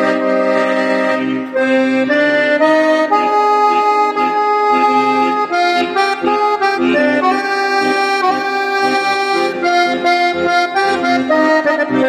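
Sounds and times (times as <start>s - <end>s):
accordion playing a tango: 0.0s - 12.0s.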